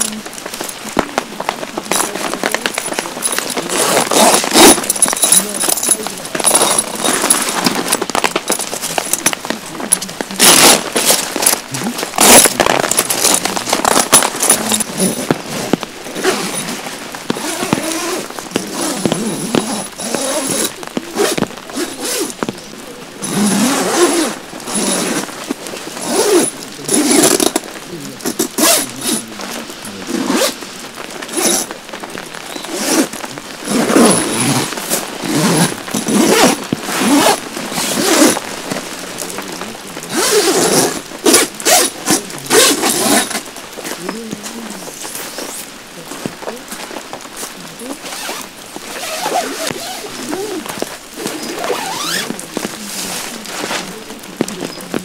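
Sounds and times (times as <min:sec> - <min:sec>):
tent fabric rustling: 0:00.0 - 0:55.0
tent zippers being pulled: 0:00.0 - 0:55.0.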